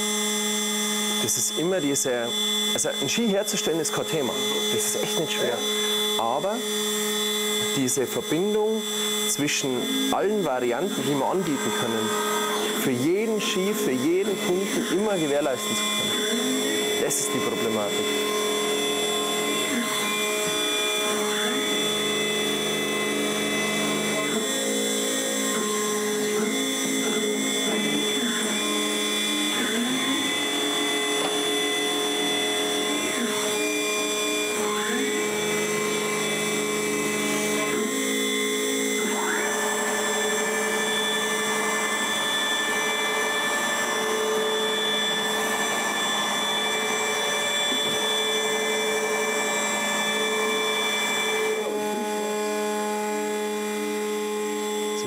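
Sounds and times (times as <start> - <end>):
router machine whine: 0.0 - 55.0.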